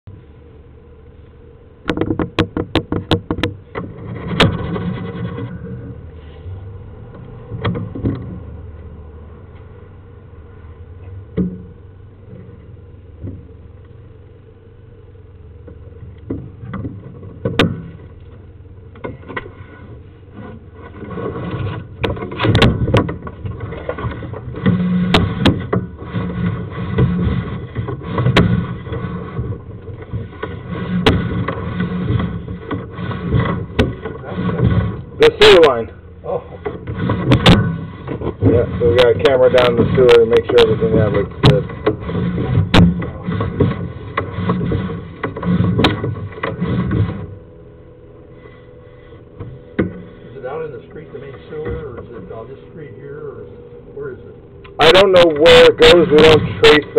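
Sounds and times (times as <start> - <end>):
cable scraping in pipe: 1.9 - 6.6, 19.1 - 47.4, 48.2 - 56.9.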